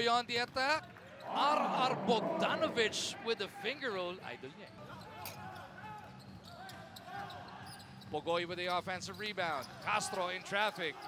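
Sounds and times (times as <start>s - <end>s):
distant players shouting: 1.2s - 3.2s.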